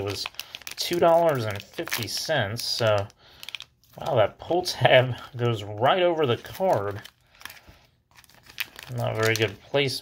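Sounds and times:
foil wrapper crinkling: 0:00.0 - 0:04.2, 0:06.2 - 0:10.0.

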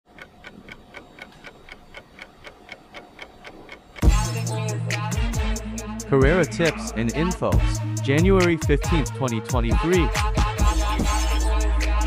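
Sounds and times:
clock-like ticking: 0:00.1 - 0:05.1.

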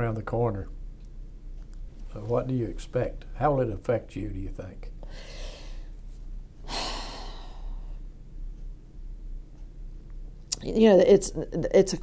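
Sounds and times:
woman breathing: 0:05.0 - 0:06.0, 0:06.6 - 0:08.1
woman sighing: 0:06.7 - 0:07.9.

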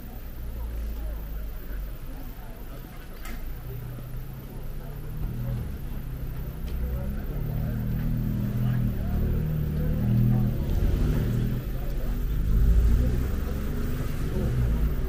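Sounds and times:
car engine rumble: 0:00.0 - 0:15.0.

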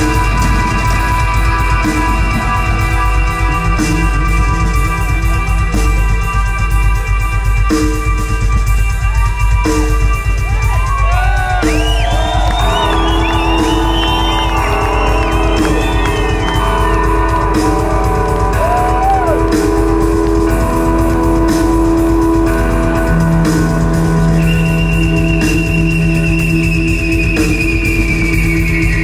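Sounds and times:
bowed electric guitar: 0:00.0 - 0:08.4, 0:12.8 - 0:25.0
bass guitar: 0:00.0 - 0:29.0
drums: 0:00.0 - 0:29.0.

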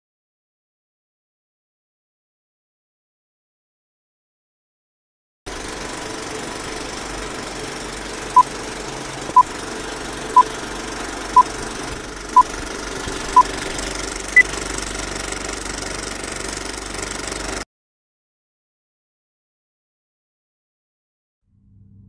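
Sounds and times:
film projector clatter with crackle: 0:05.5 - 0:17.6.

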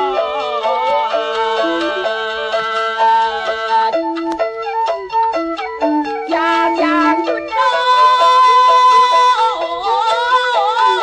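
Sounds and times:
long held high note: 0:00.0 - 0:09.5
melody of quick changing notes: 0:00.0 - 0:09.8.

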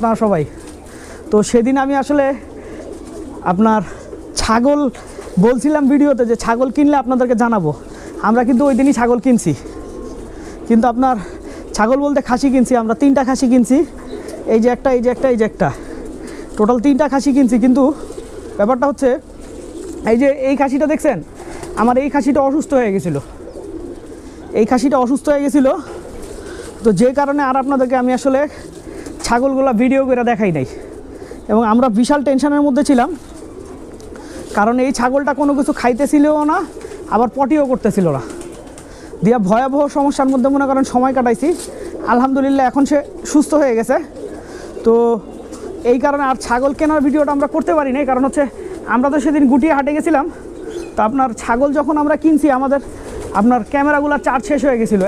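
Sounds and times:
man talking: 0:00.0 - 0:00.6, 0:01.3 - 0:02.6, 0:03.4 - 0:09.8, 0:10.4 - 0:19.3, 0:20.0 - 0:23.3, 0:24.5 - 0:26.0, 0:26.8 - 0:33.3, 0:34.5 - 0:38.4, 0:39.1 - 0:44.2, 0:44.8 - 0:55.0
person speaking: 0:00.0 - 0:19.4, 0:20.0 - 0:23.4, 0:24.2 - 0:33.3, 0:34.2 - 0:55.0
pigeons cooing: 0:00.0 - 0:55.0.

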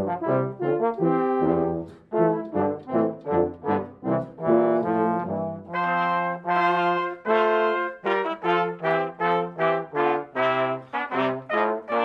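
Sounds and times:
brass quintet playing chords: 0:00.0 - 0:12.0.

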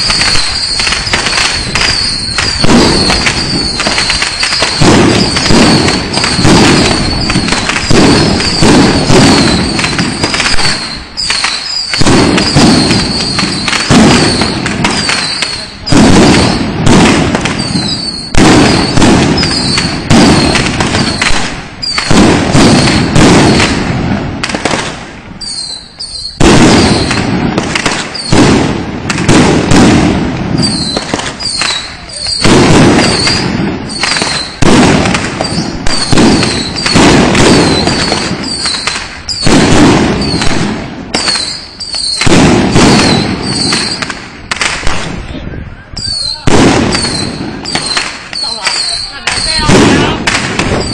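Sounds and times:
firecrackers crackling: 0:00.0 - 0:50.9.

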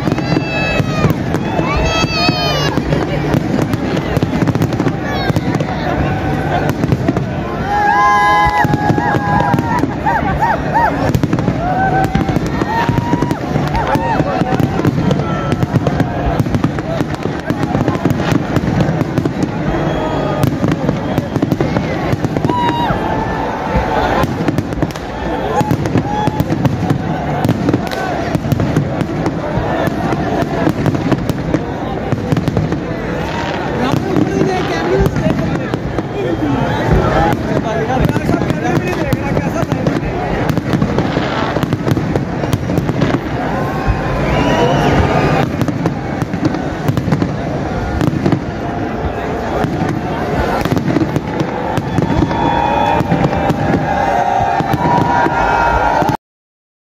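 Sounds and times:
crowd voices: 0:00.0 - 0:56.2
fireworks bangs and crackling: 0:00.0 - 0:56.2.

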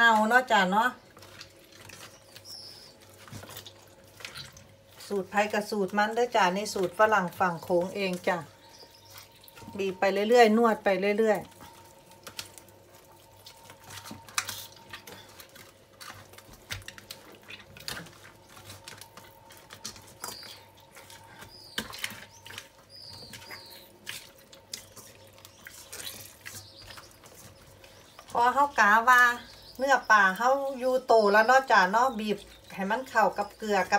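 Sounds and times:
faint steady hum: 0:00.0 - 0:33.9
hands squelching wet fish: 0:00.0 - 0:33.9.

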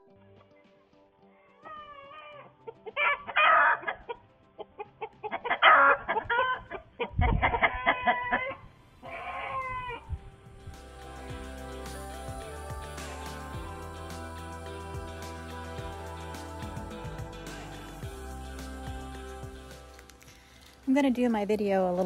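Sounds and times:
chicken distress squawks: 0:05.2 - 0:10.0.

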